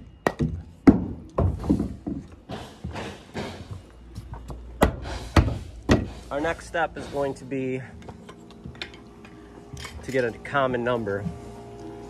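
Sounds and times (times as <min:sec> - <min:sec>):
knocks and thumps on wood: 0:00.2 - 0:03.6, 0:04.8 - 0:06.2.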